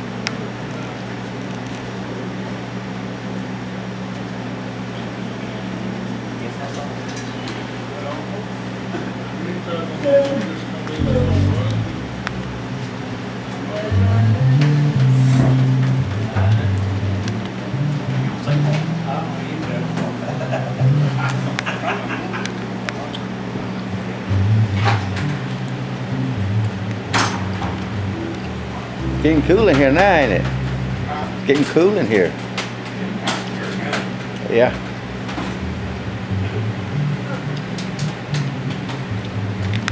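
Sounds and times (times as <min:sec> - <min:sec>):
electric bass guitar low notes: 0:11.0 - 0:19.1, 0:19.9 - 0:21.6, 0:23.8 - 0:32.5, 0:34.7 - 0:39.9.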